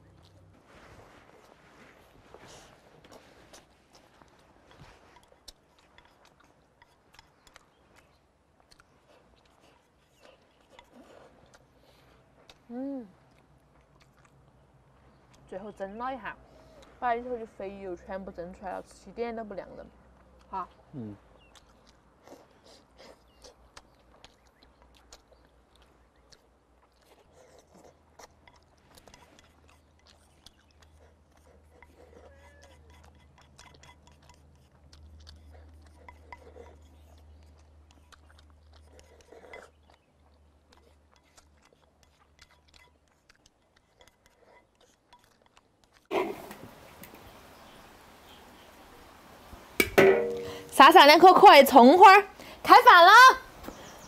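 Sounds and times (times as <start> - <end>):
chewing: 0.0 - 48.4.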